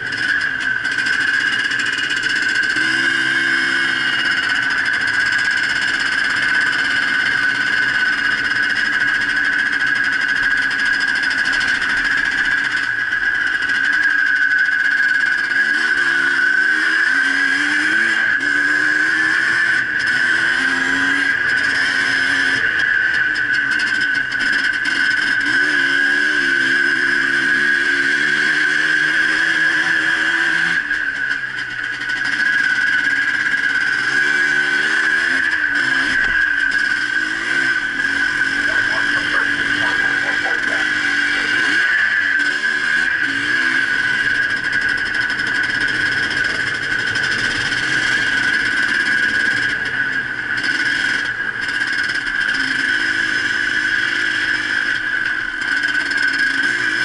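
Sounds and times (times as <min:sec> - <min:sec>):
motorcycle engine revving: 0:00.0 - 0:57.0
steady high-pitched tone: 0:36.5 - 0:42.2.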